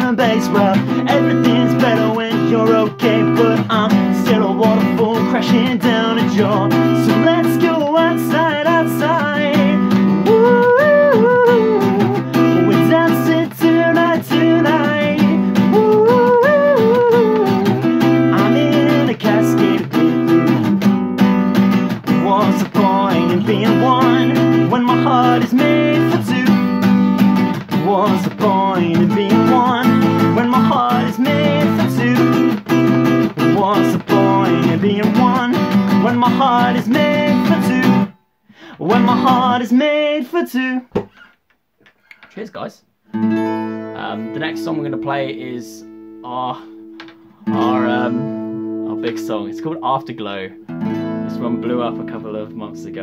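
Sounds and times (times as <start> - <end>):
man singing: 0.0 - 20.7, 22.0 - 27.0, 27.6 - 41.1, 43.9 - 50.6, 51.2 - 53.0
acoustic guitar strumming: 0.0 - 41.3, 43.0 - 53.0.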